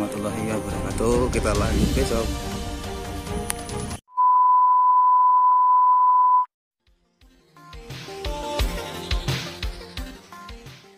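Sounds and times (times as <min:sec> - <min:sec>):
steady test tone beep: 0:04.1 - 0:06.5.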